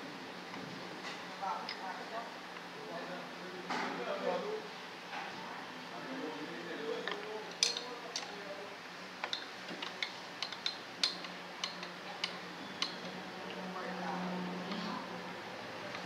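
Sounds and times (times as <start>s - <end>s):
light metallic clicks and taps: 9.2s - 13.6s.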